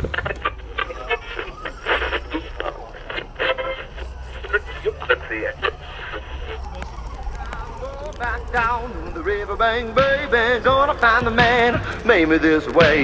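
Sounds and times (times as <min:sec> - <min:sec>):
low rumble: 0:00.0 - 0:12.8
people talking indistinctly: 0:00.2 - 0:13.0
music with singing: 0:07.4 - 0:13.0.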